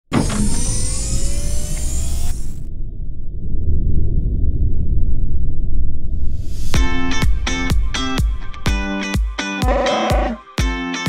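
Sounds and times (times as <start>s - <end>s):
synthesized rising tones: 0.2s - 9.2s
deep rumble: 0.4s - 9.2s.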